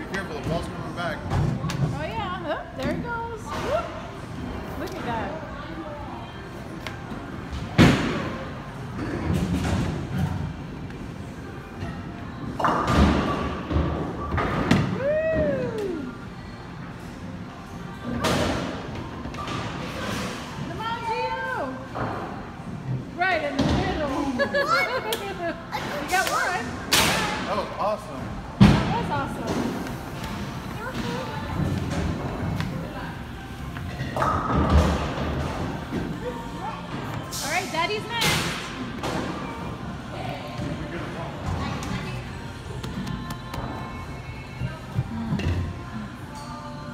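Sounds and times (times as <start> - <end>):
background music: 24.0 - 46.9.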